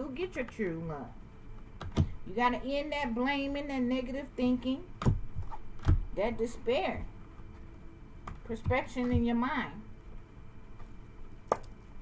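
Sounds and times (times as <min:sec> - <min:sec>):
sharp tap of cards on table: 0:11.5 - 0:11.7.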